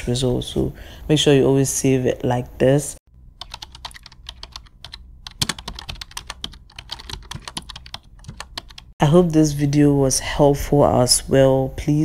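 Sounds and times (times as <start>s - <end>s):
keyboard typing clicks: 3.4s - 8.9s.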